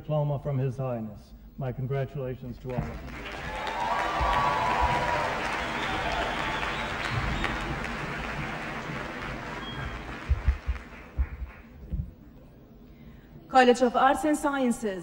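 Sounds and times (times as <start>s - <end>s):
audience applauding: 2.7s - 11.9s
low thumps: 4.0s - 12.3s.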